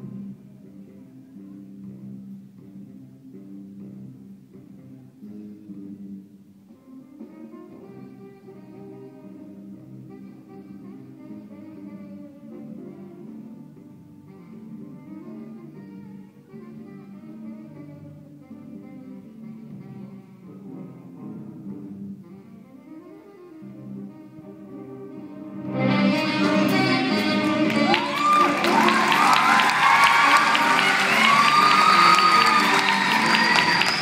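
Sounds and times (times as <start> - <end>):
jazz band with saxophones: 0.0 - 34.0
audience applause and cheering: 26.5 - 34.0.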